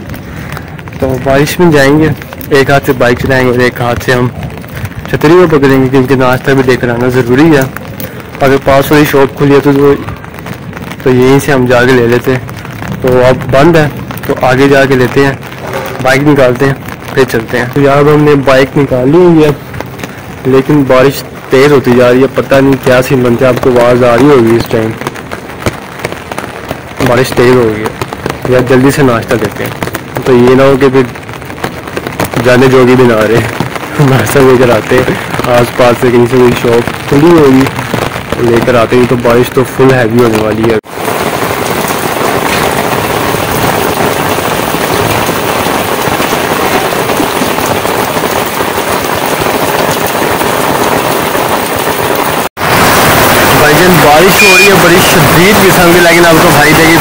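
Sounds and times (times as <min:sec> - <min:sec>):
heavy rain hiss: 0:00.0 - 0:57.0
raindrops tapping on umbrella: 0:00.0 - 0:57.0.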